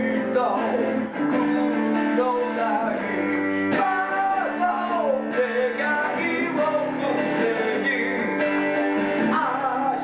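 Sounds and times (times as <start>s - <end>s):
electric guitar strummed and picked: 0.0s - 10.0s
man singing: 0.0s - 10.0s.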